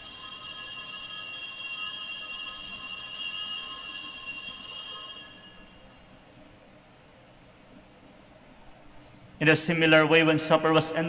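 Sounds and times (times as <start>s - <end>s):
altar bells ringing: 0.0s - 6.4s.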